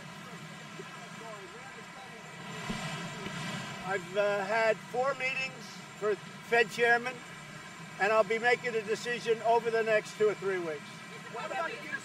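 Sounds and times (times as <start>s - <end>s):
steady background hum: 0.0s - 12.0s
man asking a question: 3.8s - 7.2s, 8.0s - 11.9s.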